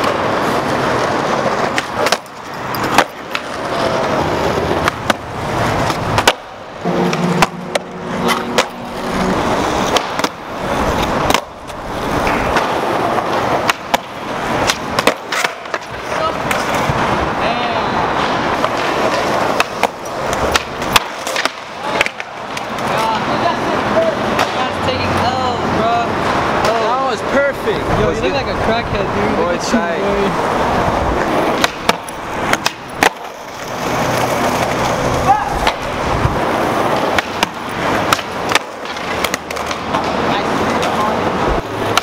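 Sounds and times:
skateboard clacking on ground: 0.0s - 28.3s, 29.3s - 42.0s
skateboard wheels rolling on asphalt: 0.0s - 42.0s.

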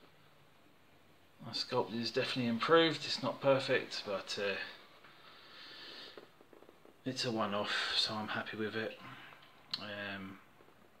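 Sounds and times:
person speaking: 1.4s - 4.9s
faint breath: 4.7s - 6.4s
faint clicks: 9.3s - 9.9s.

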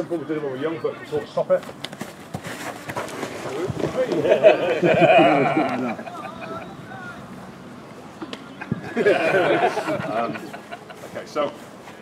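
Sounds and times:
person laughing: 4.2s - 6.7s
scuffing footsteps on turf: 11.0s - 12.0s.

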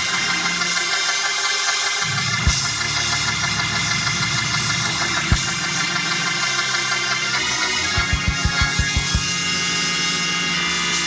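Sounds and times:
sustained organ chord: 0.0s - 11.0s
low bass drone: 2.0s - 11.0s.

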